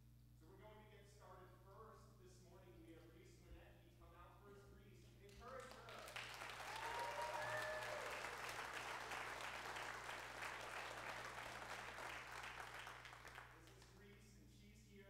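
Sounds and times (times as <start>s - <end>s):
congregation applauding: 5.3s - 14.0s.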